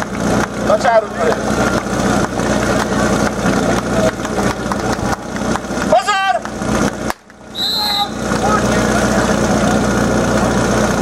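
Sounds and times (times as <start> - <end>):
crowd chatter: 0.0 - 6.9, 7.5 - 11.0
pump engine idling: 0.0 - 11.0
pitched call rising and falling: 7.5 - 8.2.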